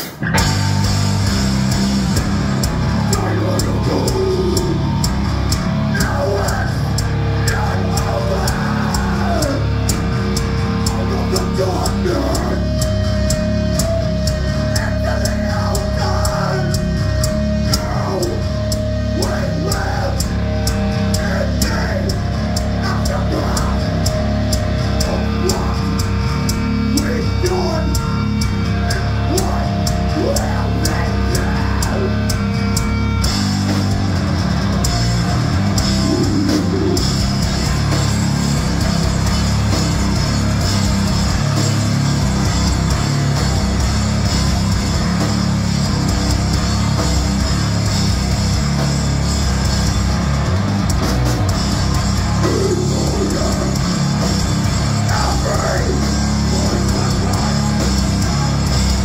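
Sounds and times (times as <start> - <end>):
bass guitar riffing: 0.0 - 59.0
death metal band playing: 0.0 - 59.0
distorted electric guitar riffing: 0.0 - 59.0
fast driving drums: 0.0 - 59.0.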